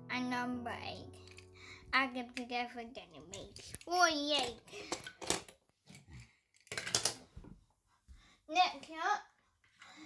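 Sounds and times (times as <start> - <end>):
metal toy cars clattering: 3.3 - 7.2.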